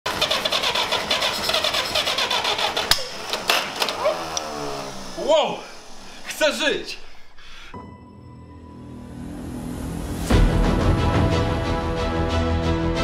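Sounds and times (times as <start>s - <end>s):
engine running: 0.1s - 6.3s
men talking: 4.1s - 7.2s.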